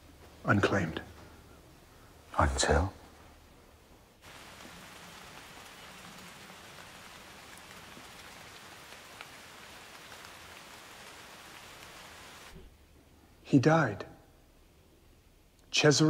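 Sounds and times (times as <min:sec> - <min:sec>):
rain falling: 0:00.0 - 0:13.6.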